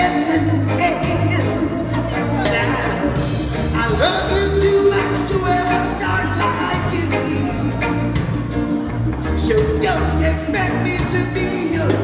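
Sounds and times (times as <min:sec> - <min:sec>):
man singing: 0:00.0 - 0:08.2, 0:09.2 - 0:12.0
reggae band with horns: 0:00.0 - 0:12.0.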